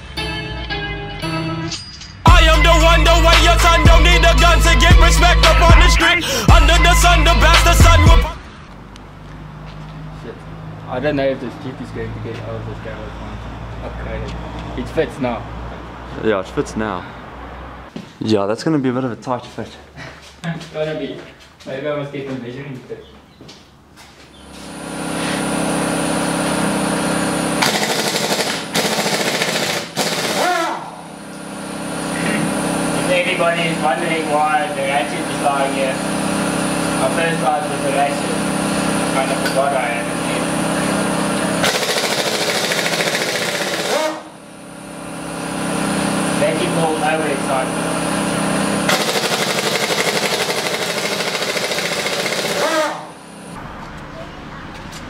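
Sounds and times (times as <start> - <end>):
steady mechanical hum: 21.0 - 55.0
pneumatic impact wrench rattling: 27.5 - 30.9, 41.3 - 44.4, 48.6 - 53.2.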